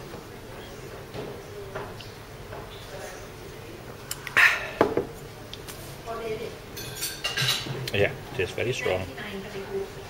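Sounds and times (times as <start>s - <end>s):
dishes and cutlery clattering: 6.8s - 7.9s.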